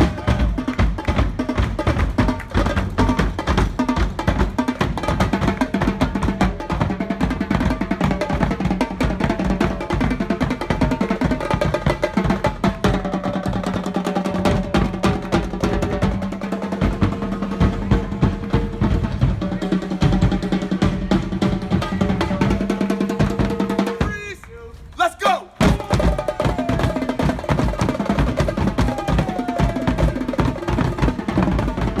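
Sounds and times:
drum group playing fast beat: 0.0s - 24.2s, 25.6s - 32.0s.

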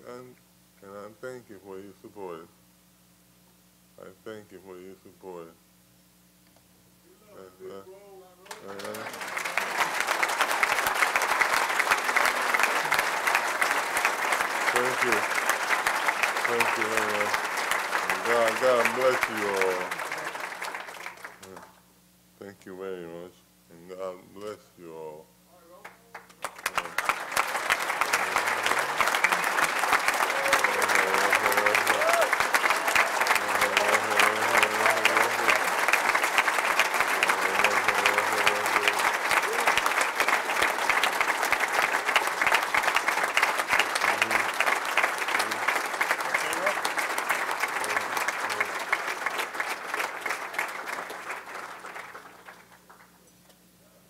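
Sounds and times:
people applauding: 8.4s - 21.8s, 25.8s - 53.2s.

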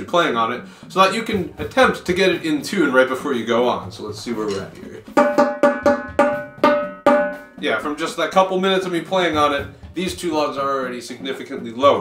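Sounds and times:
tenor drum struck with stick: 3.9s - 12.0s.

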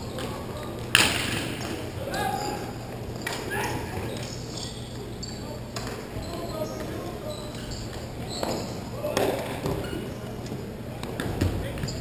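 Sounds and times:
players shouting in a hall: 0.0s - 10.4s.

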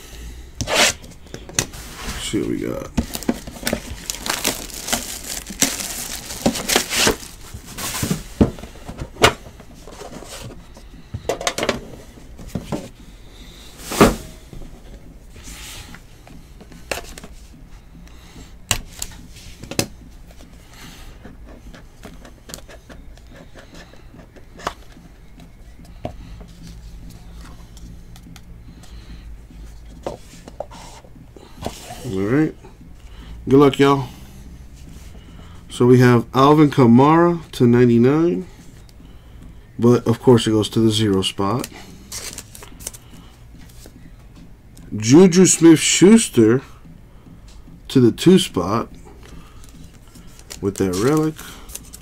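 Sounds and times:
cardboard clicks and rustles: 2.9s - 11.8s, 41.6s - 43.0s, 49.6s - 52.0s
box wrapping tearing: 3.1s - 7.4s.

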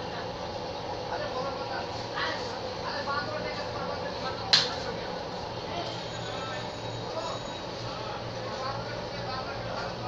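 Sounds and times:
faint indistinct voices: 0.0s - 10.0s
steady background noise: 0.0s - 10.0s.

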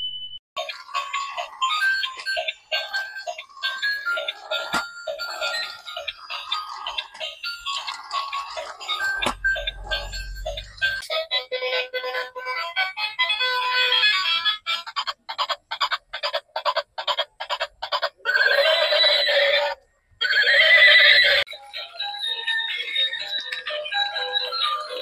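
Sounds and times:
tinny electronic toy tune: 0.9s - 11.0s.

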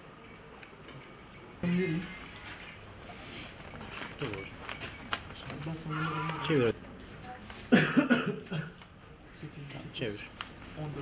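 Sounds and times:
person coughing: 7.7s - 8.8s.

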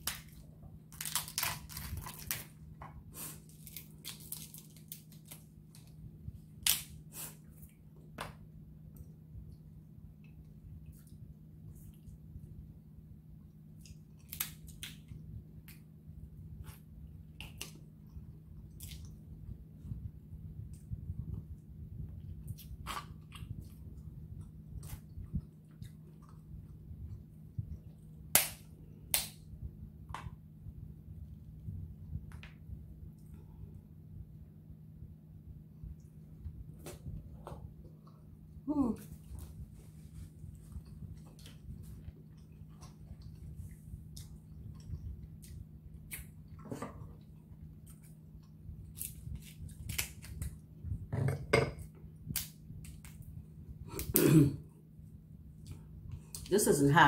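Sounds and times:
crab shell cracking by hand: 0.0s - 2.5s, 13.8s - 15.1s, 49.0s - 50.6s
woman clearing her throat: 54.1s - 54.7s.

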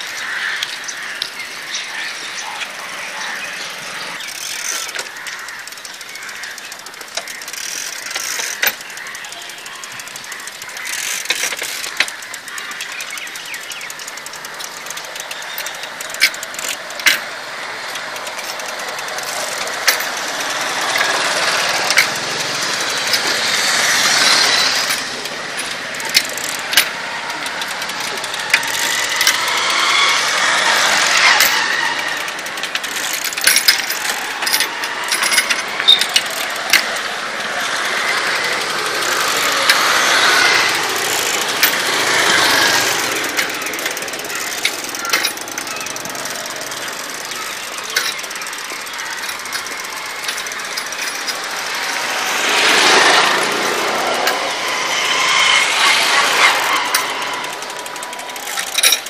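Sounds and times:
chain and crank clicking: 0.0s - 59.0s
road traffic passing: 0.0s - 59.0s.

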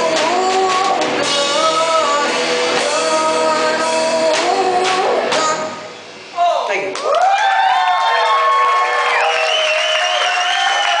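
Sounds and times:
live rock band: 0.0s - 6.8s
applause: 6.9s - 11.0s
audience cheering and whooping: 7.0s - 11.0s.

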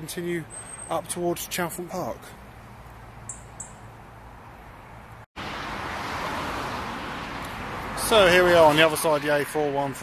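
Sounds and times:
rushing traffic: 0.0s - 10.0s.

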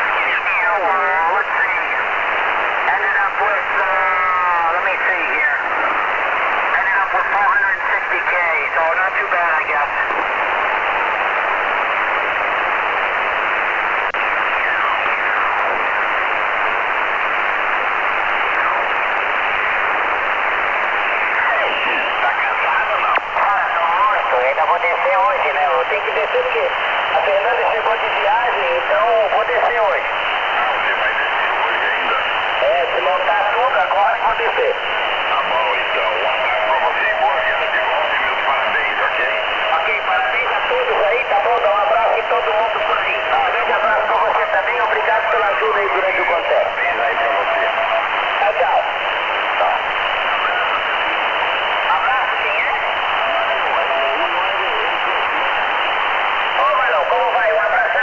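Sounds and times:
faint garbled radio voice: 0.0s - 13.0s, 17.7s - 58.0s
radio band noise hiss: 0.0s - 58.0s
steady radio whistle: 14.2s - 16.0s, 16.7s - 58.0s.

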